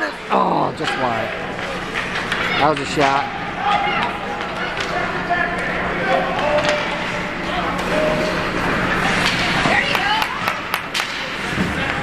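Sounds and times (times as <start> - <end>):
spectators talking: 0.0 - 12.0
hockey sticks and puck clacking: 0.8 - 12.0.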